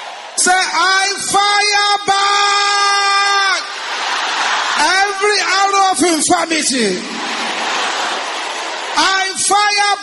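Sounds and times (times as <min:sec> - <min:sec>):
congregation praying aloud: 0:00.0 - 0:10.0.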